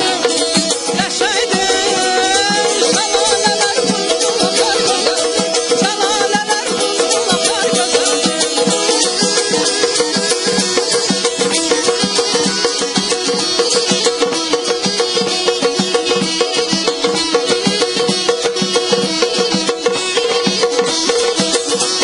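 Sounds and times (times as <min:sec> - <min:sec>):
drums beating busy rhythm: 0:00.0 - 0:22.0
reed pipe melody: 0:00.0 - 0:22.0.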